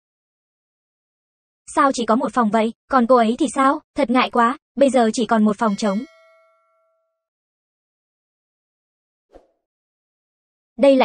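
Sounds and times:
bright metallic ding: 0:05.7 - 0:07.2.

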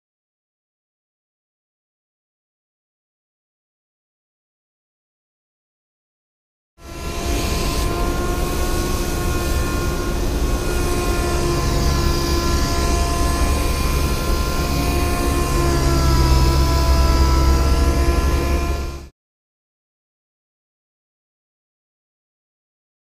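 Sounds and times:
compressed air blowing: 0:06.8 - 0:19.1.

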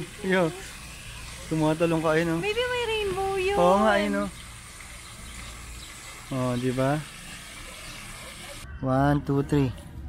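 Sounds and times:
fountain jet splashing into pond: 0:00.0 - 0:08.6.

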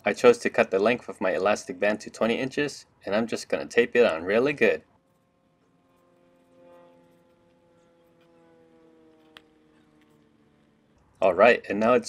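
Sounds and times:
faint distant engine drone: 0:00.0 - 0:12.0.

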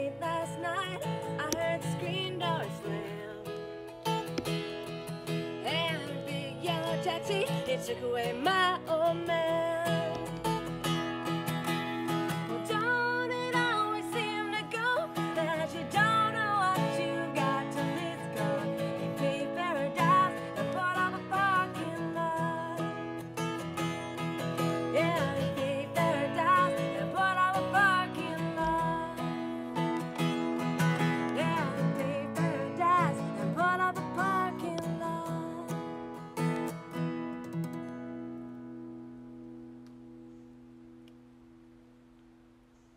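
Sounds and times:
woman singing: 0:00.0 - 0:03.7, 0:05.5 - 0:10.6, 0:12.3 - 0:23.2, 0:24.7 - 0:36.2
strummed acoustic guitar: 0:00.0 - 0:41.0.

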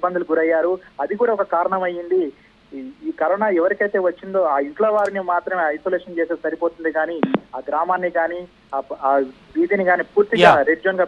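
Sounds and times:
electronic blip: 0:07.2 - 0:07.4
person talking: 0:10.4 - 0:10.7.

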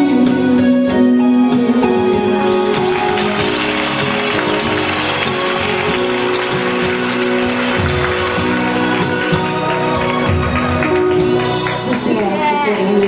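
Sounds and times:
saxophone: 0:00.0 - 0:12.3
electric guitar: 0:00.0 - 0:13.0
keyboard: 0:00.0 - 0:13.0.

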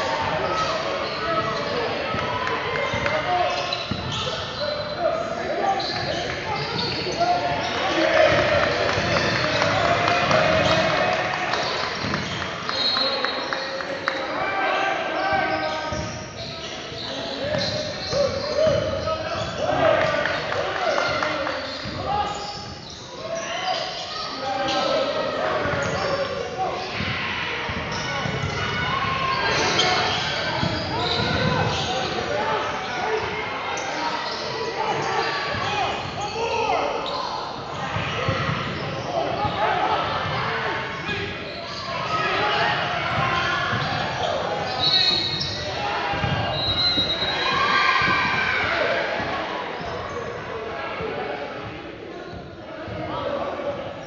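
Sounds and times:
players and coaches shouting: 0:00.0 - 0:51.8.

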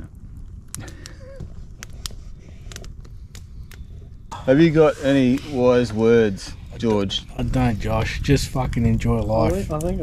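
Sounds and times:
campfire crackling: 0:00.0 - 0:10.0
sharp pops of burning wood: 0:00.0 - 0:10.0.

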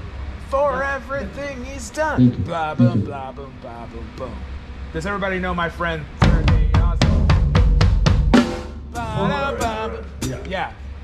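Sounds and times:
drum kit hits: 0:06.2 - 0:09.2.

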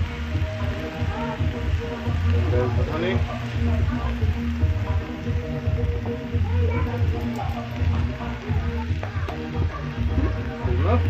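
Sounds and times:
music with heavy bass line: 0:00.0 - 0:11.0
vegetables sizzling in a pan: 0:00.0 - 0:11.0.

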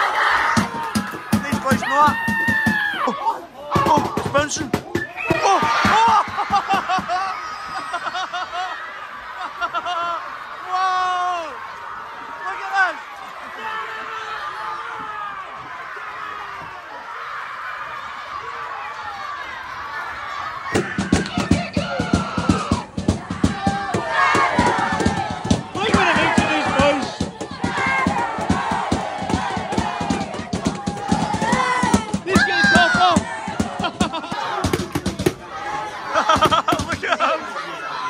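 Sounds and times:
boys chanting and shouting: 0:00.0 - 0:07.9, 0:18.0 - 0:38.0
loud rapid drum beat: 0:00.6 - 0:02.8, 0:03.8 - 0:05.0, 0:20.8 - 0:35.4, 0:36.4 - 0:37.1.

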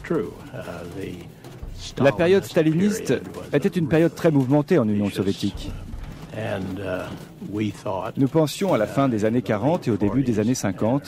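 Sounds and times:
narration: 0:00.0 - 0:11.0.

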